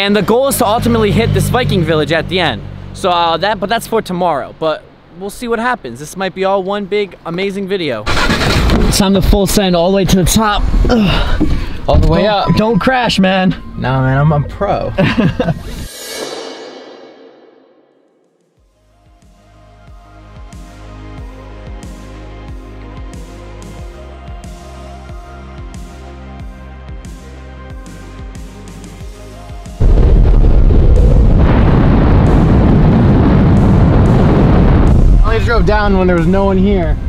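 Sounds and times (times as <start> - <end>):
music: 12.3 - 37.0
man laughing: 14.8 - 15.9
swishing effect: 15.7 - 18.2
wind rushing over microphone: 29.8 - 37.0.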